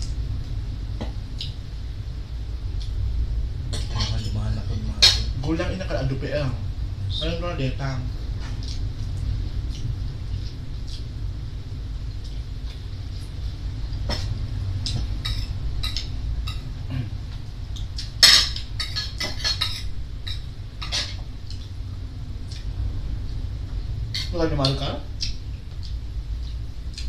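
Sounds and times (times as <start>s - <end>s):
low hum: 0.0s - 27.0s
cutlery clatter: 18.2s - 21.2s
spoons clinking on plates: 18.2s - 21.2s.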